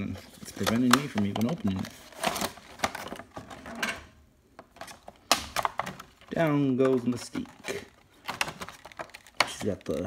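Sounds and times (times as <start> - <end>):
cardboard and plastic package handled: 0.0 - 10.0.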